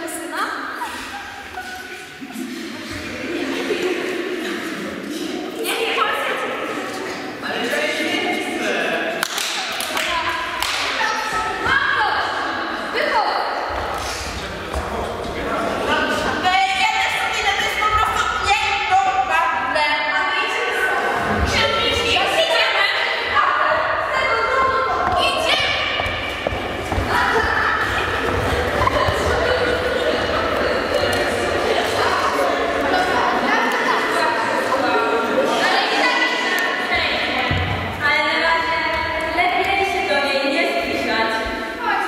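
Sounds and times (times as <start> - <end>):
voices in echoing hall: 0.0 - 42.0.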